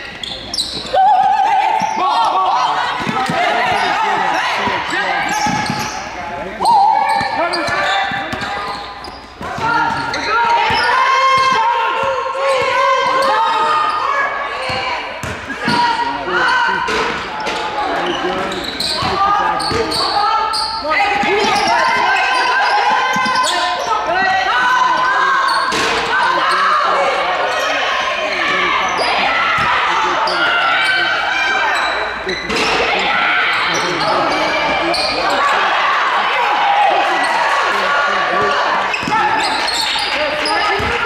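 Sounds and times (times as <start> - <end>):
voices of players and spectators: 0.0 - 41.0.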